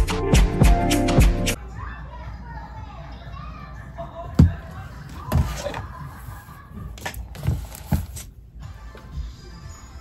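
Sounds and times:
faint children's voices: 1.6 - 7.9.

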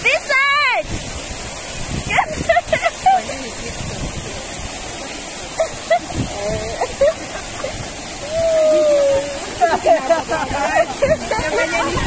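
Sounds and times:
fountain water splashing: 0.0 - 12.0
faint voices calling: 5.5 - 12.0.

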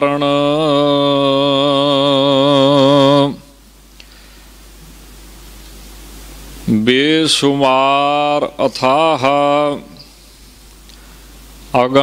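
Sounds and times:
man chanting: 0.0 - 3.6, 6.7 - 10.2, 11.7 - 12.0
microphone hiss and hum: 0.0 - 12.0.

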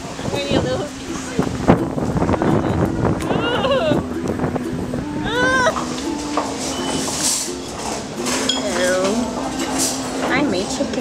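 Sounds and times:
background voices: 0.0 - 11.0
tableware clink: 5.8 - 10.3.

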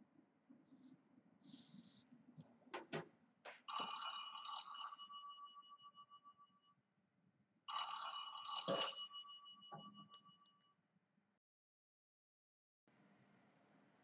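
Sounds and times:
telephone ringing: 3.7 - 6.3, 7.7 - 10.4.

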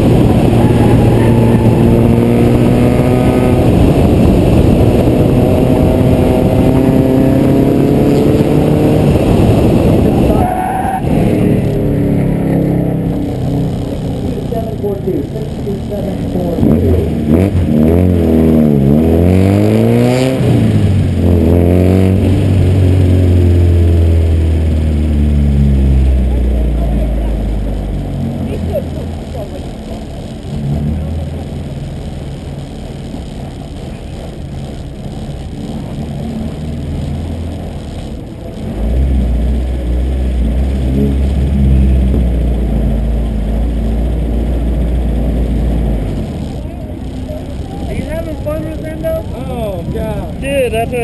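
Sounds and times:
car engine revving through gears: 0.0 - 51.0.

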